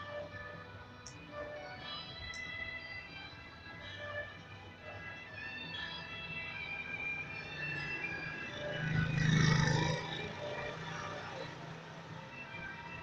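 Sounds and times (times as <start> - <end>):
faint music with held notes: 0.0 - 13.0
motor vehicle passing: 6.6 - 13.0.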